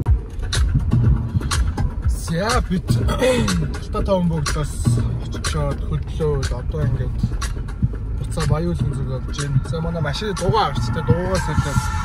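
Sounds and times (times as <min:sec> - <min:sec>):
car driving rumble from inside: 0:00.0 - 0:12.0
music: 0:00.0 - 0:12.0.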